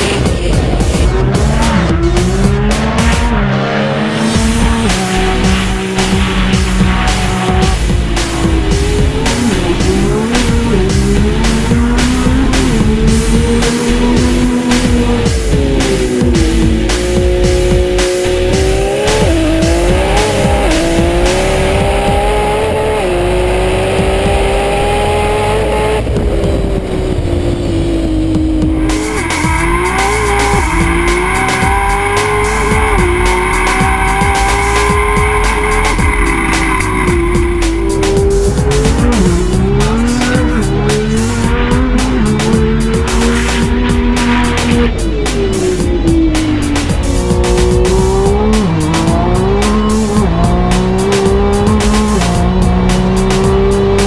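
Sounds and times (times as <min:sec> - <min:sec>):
car engines accelerating hard: 0:00.0 - 0:54.0
music: 0:00.0 - 0:54.0.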